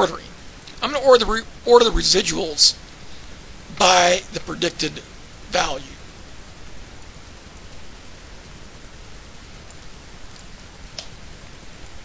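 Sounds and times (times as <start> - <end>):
microphone hiss: 0.0 - 12.0
faint mouse clicks: 9.6 - 11.2.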